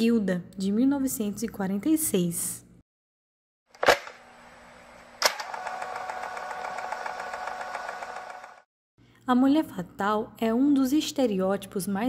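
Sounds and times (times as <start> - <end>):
film projector clattering and whirring: 3.7 - 8.7
film projector clicking on: 4.9 - 8.6.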